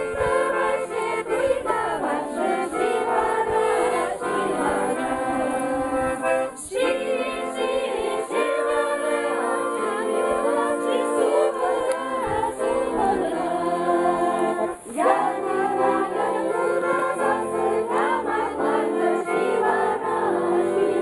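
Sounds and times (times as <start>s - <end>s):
group singing in chorus: 0.0s - 21.0s.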